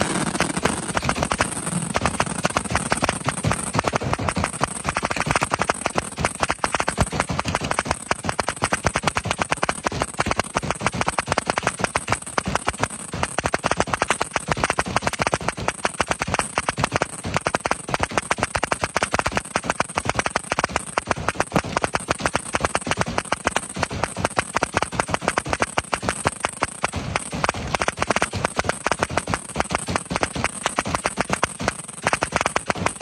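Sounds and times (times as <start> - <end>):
fireworks bangs: 0.0 - 4.3.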